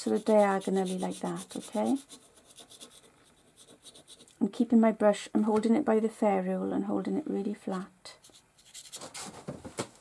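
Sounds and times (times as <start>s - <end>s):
dry brush scratching on paper: 0.0s - 4.3s, 8.2s - 9.4s.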